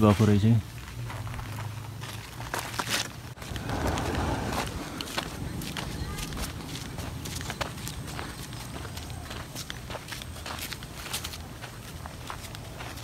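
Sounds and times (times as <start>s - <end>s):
footsteps on gravel: 0.0s - 13.0s
low steady rumble: 3.2s - 10.2s.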